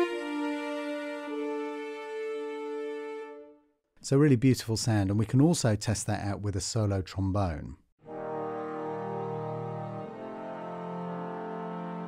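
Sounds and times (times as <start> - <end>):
french horn and cellos chord: 0.0 - 3.7, 8.0 - 12.0.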